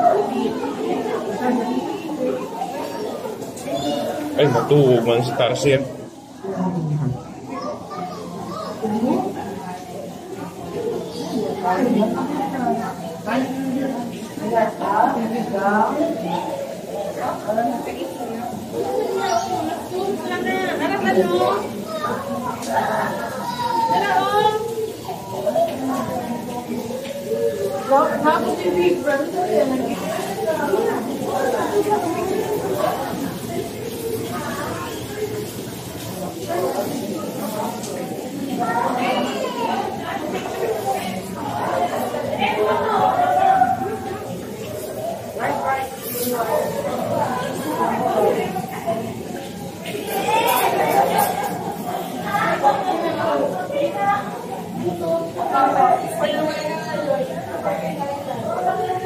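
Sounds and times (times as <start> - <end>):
chatter of voices: 0.0 - 59.0.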